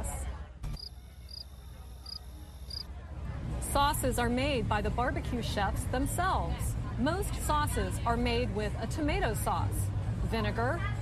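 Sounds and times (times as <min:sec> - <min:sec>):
cricket chirping: 0:00.8 - 0:02.8.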